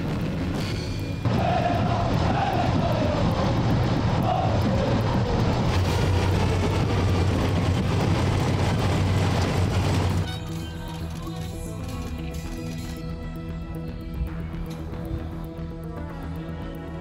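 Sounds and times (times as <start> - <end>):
heavy engines running: 0.0 - 12.0.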